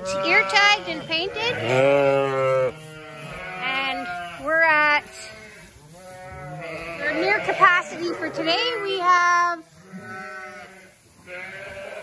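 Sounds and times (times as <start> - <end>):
sheep bleating: 0.0 - 12.0.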